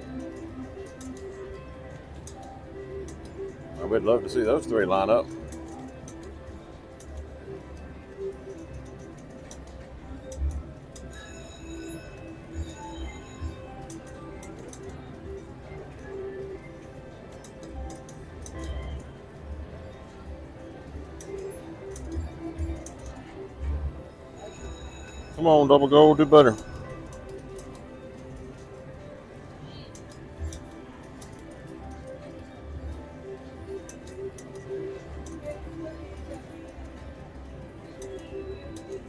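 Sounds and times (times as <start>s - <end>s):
electronic slot machine music: 0.0s - 39.0s
slot machine reels ticking: 0.0s - 39.0s.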